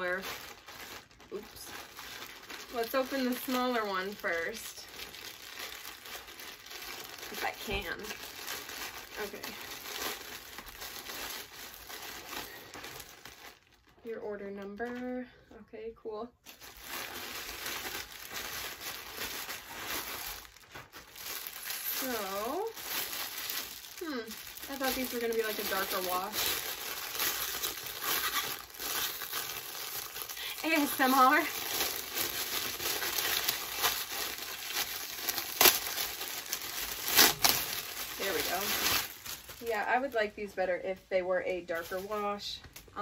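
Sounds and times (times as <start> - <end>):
plastic mailer bag crinkling: 0.0 - 15.2, 16.5 - 40.6, 41.5 - 43.0.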